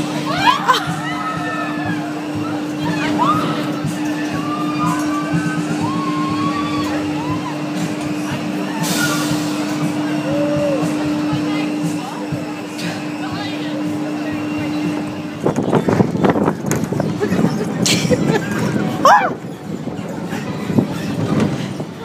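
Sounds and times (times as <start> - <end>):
voices calling out: 0.0 - 15.4
coaster car rattling on steel track: 0.0 - 22.0
fairground ride mechanical hum: 0.0 - 22.0.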